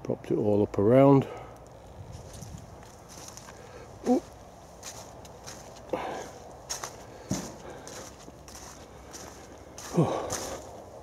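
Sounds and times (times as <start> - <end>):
footsteps crunching through dry leaves: 1.7 - 11.0.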